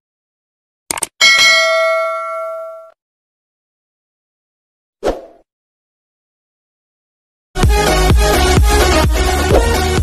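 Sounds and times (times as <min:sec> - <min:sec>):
notification bell ding: 0:01.2 - 0:03.0.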